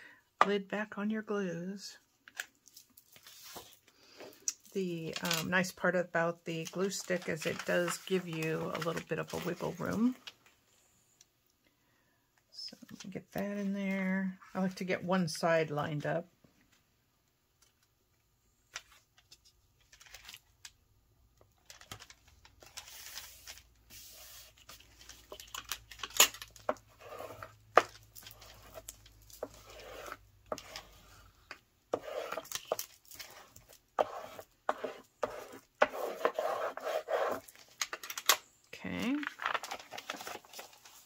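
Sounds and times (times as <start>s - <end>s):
paper rustling and sliding: 3.1s - 3.8s, 21.7s - 31.3s, 39.2s - 41.0s.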